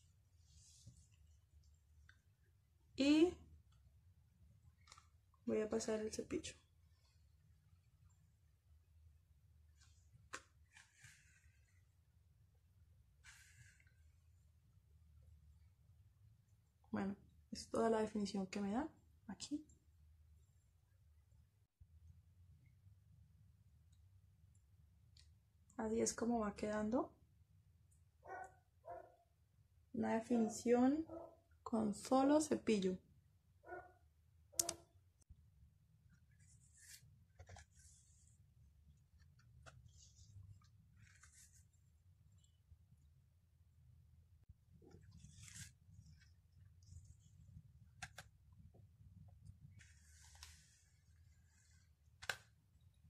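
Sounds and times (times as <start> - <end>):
hairbrush rustling through hair: 39.5 - 41.8, 45.0 - 47.1, 49.7 - 52.4.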